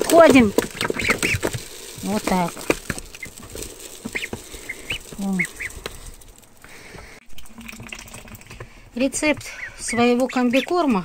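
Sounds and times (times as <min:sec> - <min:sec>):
bills clicking in feed: 0:00.0 - 0:07.2
ducklings peeping: 0:00.1 - 0:02.5, 0:03.2 - 0:05.8, 0:09.1 - 0:11.0.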